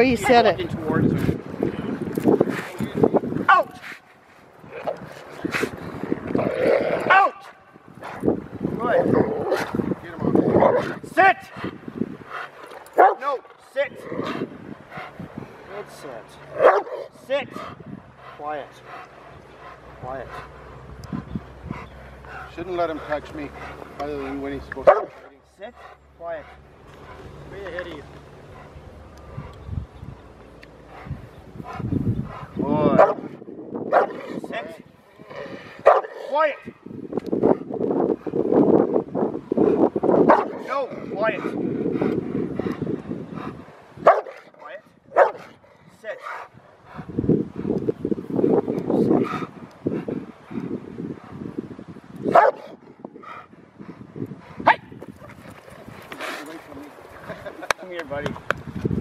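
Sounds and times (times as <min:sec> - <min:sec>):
dog barking: 0:03.5 - 0:03.8, 0:07.1 - 0:07.6, 0:13.0 - 0:13.4, 0:16.6 - 0:17.1, 0:24.8 - 0:25.2, 0:33.0 - 0:33.3, 0:33.9 - 0:34.2, 0:35.8 - 0:36.2, 0:40.3 - 0:40.8, 0:44.0 - 0:44.4, 0:45.1 - 0:45.5, 0:52.3 - 0:52.8, 0:54.6 - 0:54.9
dog barking and yelping: 0:03.5 - 0:03.8, 0:07.0 - 0:08.2, 0:16.5 - 0:17.1, 0:45.1 - 0:45.5, 0:52.3 - 0:52.7.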